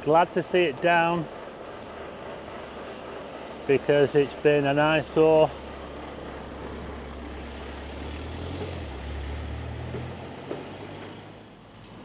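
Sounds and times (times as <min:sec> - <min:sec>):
steady outdoor hiss: 0:00.0 - 0:12.0
vehicle engine driving past: 0:05.0 - 0:11.6.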